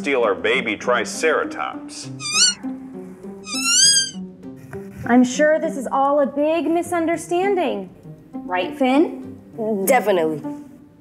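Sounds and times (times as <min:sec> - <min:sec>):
soft background music: 0:00.0 - 0:11.0
puppet high warbling squeaks: 0:02.2 - 0:02.6, 0:03.5 - 0:04.2.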